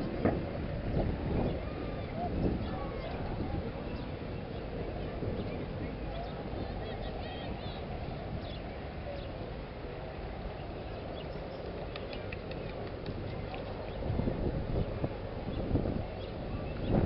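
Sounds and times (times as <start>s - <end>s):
murmur of voices: 0.0s - 17.0s
wind rumble on microphone: 0.0s - 17.0s.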